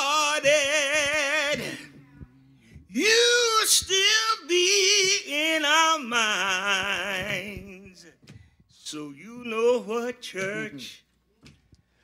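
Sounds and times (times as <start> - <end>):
person singing gospel: 0.0 - 11.1.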